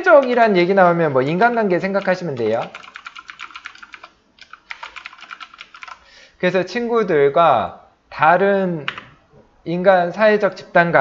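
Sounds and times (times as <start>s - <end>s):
computer keyboard typing: 1.3s - 6.0s.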